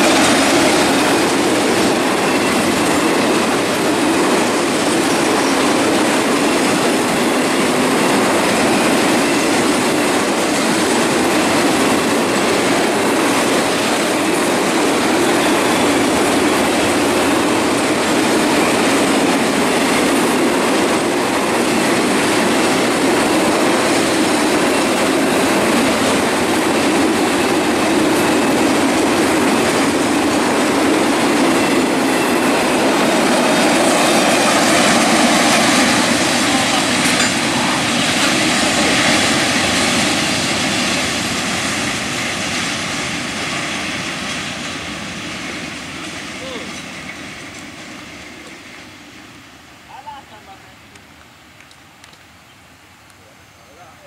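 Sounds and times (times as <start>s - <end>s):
train wheels rolling on rails: 0.0s - 54.0s.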